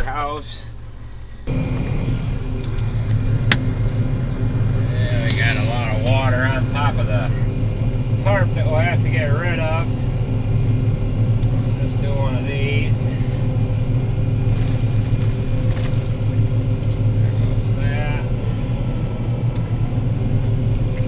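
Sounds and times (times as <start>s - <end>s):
combine harvester engine drone: 0.0s - 21.0s.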